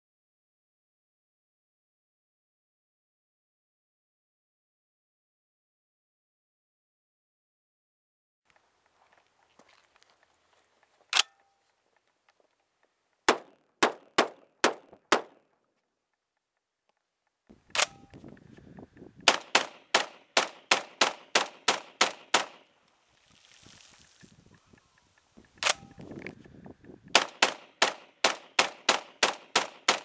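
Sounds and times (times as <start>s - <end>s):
shotgun firing: 13.3s - 15.4s, 19.2s - 22.7s, 27.1s - 30.0s.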